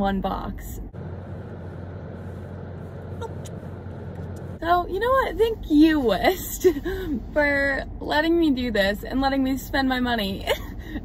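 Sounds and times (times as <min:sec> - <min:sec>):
car engine hum inside cabin: 0:00.0 - 0:11.0.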